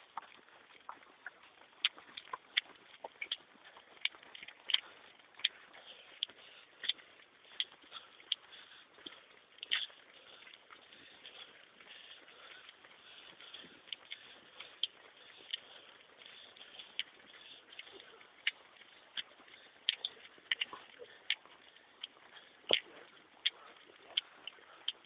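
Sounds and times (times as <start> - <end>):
running footsteps on pavement: 0.0 - 25.0.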